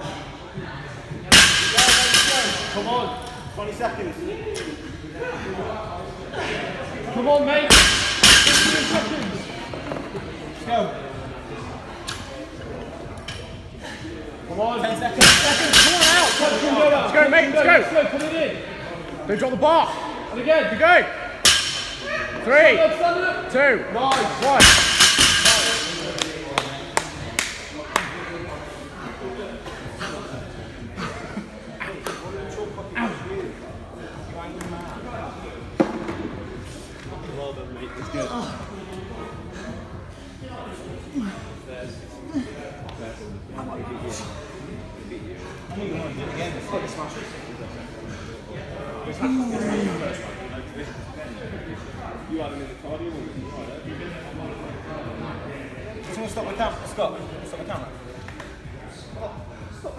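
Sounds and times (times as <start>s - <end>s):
indistinct voices echoing: 0.0s - 3.6s
voices in a gym hall: 0.0s - 59.9s.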